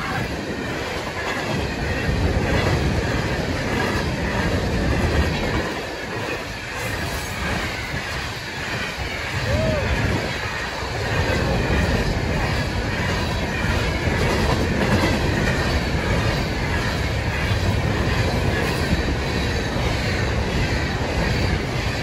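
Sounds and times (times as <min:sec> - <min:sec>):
clickety-clack over rail joints: 0:00.0 - 0:22.0
steel wheels rumbling on rail: 0:00.0 - 0:22.0.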